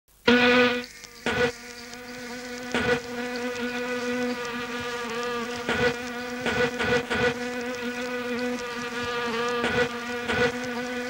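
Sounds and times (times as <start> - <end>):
fly buzzing: 0.2 - 11.0.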